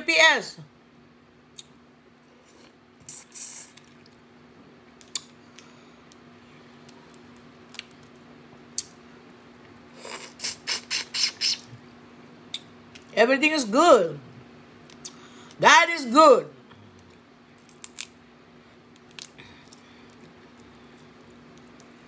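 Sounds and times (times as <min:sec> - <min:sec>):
faint steady hum: 0:00.0 - 0:22.0
sucking slurps: 0:10.0 - 0:11.7
crawfish shells cracking: 0:17.0 - 0:18.2, 0:18.9 - 0:22.0.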